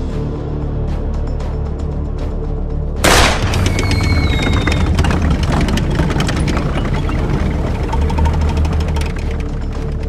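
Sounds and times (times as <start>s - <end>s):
rifle shots: 3.0s - 3.8s
tank engine droning: 3.1s - 10.0s.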